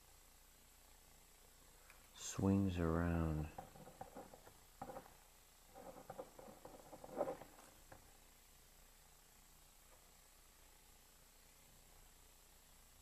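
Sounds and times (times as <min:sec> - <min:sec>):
pen scratching on paper: 0:05.7 - 0:07.7.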